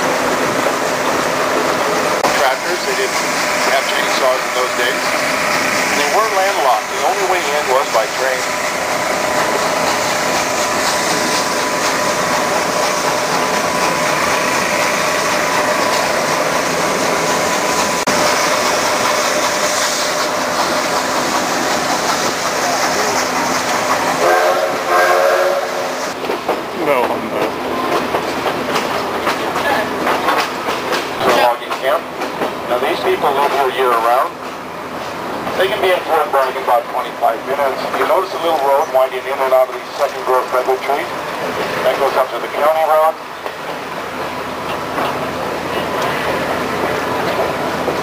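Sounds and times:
train wheels clattering on rails: 0.0 - 48.0
steam whistle blast: 24.2 - 26.1.

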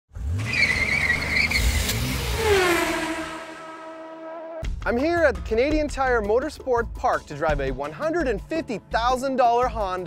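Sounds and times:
race car engine passing: 0.2 - 4.6
tyre squeal: 0.4 - 4.6.

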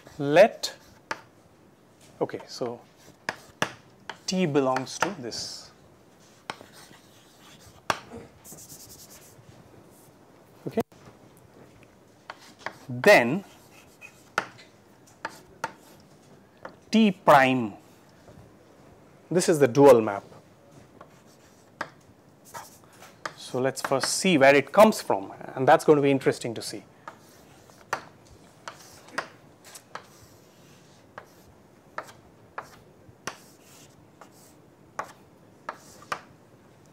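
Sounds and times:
chalk tapping on blackboard: 0.7 - 1.3, 3.0 - 5.2, 6.4 - 9.3, 12.3 - 12.9, 13.6 - 14.6, 15.2 - 16.0, 21.0 - 24.2, 27.0 - 36.3.

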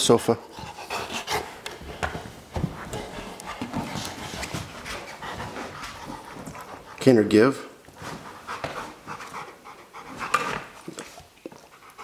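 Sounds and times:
dog panting: 0.3 - 7.3, 8.0 - 12.0.

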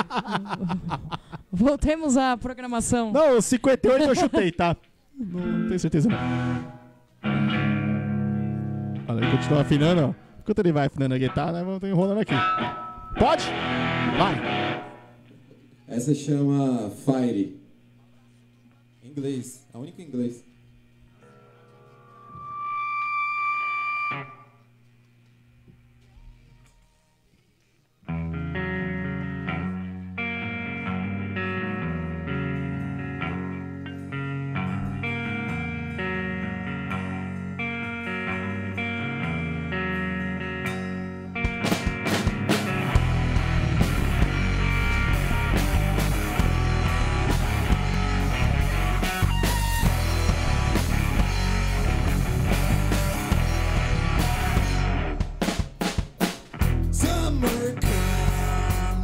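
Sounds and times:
electric guitar riff: 5.2 - 11.6, 12.2 - 15.2, 21.1 - 24.8, 28.1 - 59.0
rock band playing: 5.4 - 10.3, 12.3 - 15.2, 28.2 - 59.0
held tone: 12.3 - 13.6, 21.1 - 24.6.

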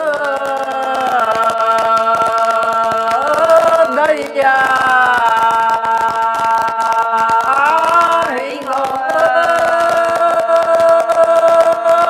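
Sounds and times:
man singing folk song: 0.0 - 12.0.

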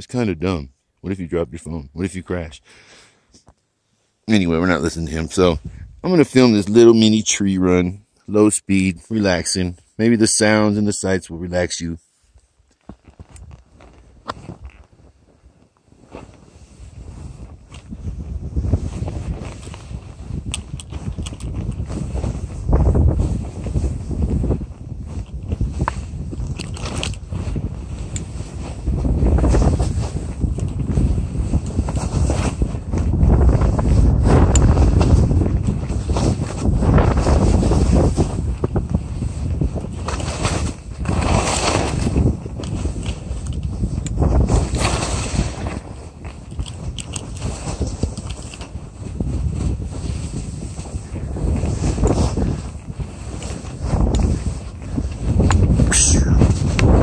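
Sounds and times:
wind rushing over microphone: 4.7 - 6.6, 16.0 - 57.0
skis swishing in snow: 12.0 - 21.2, 27.2 - 46.4, 47.3 - 57.0.

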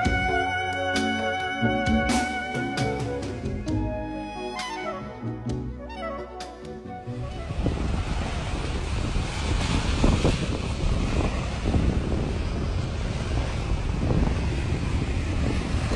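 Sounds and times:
wind buffeting microphone: 6.8 - 15.9
sea waves washing on rocky shore: 7.2 - 15.9.

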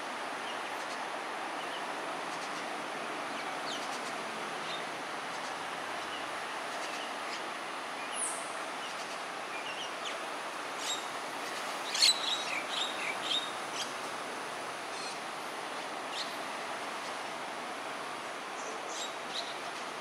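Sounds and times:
steady background hiss: 0.0 - 20.0
bird chirps and calls: 11.8 - 13.9.

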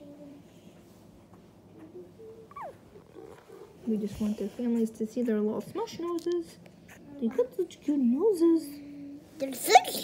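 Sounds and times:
puppy whining: 1.9 - 3.9
puppy squeaking: 2.5 - 3.7.

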